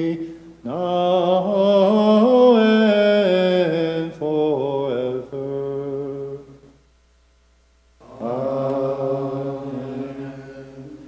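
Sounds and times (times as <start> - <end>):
man chanting: 0.0 - 6.6, 8.0 - 11.0.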